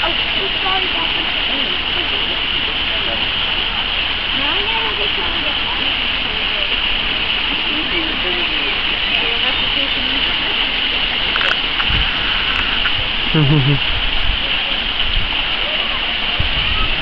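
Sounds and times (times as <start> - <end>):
fountain water rushing: 0.0 - 17.0
indistinct voices: 0.0 - 17.0.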